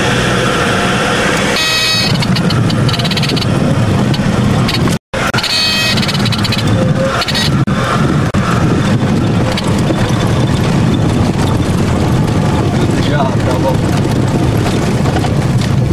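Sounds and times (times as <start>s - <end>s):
light aircraft engine droning: 0.0s - 15.9s.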